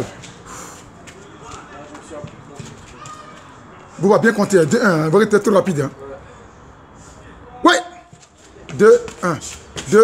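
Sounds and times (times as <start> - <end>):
footsteps on concrete: 0.0 - 4.8, 8.0 - 10.0
faint distant voices: 0.0 - 10.0.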